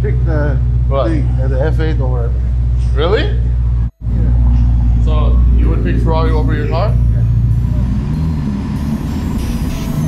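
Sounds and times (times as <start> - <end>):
car engine cruising: 0.0 - 10.0.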